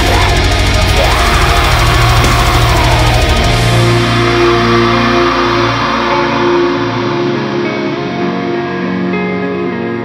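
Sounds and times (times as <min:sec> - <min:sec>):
deep bass: 0:00.0 - 0:08.9
echoing guitar passage: 0:00.0 - 0:10.0
ringing guitar chords: 0:00.0 - 0:10.0.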